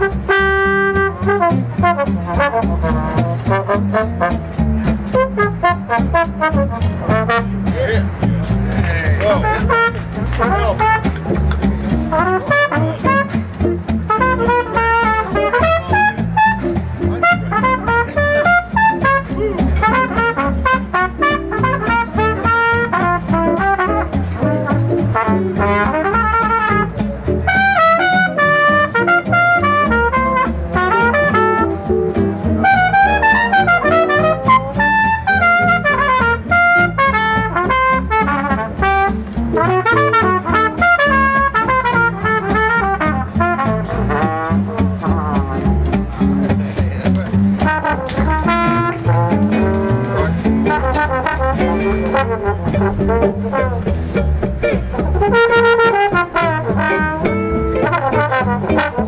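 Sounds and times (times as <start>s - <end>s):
trumpet solo: 0.0s - 7.7s, 9.2s - 11.4s, 12.1s - 46.0s, 47.6s - 59.0s
acoustic guitar chords: 0.0s - 59.0s
plucked string bass: 0.0s - 59.0s.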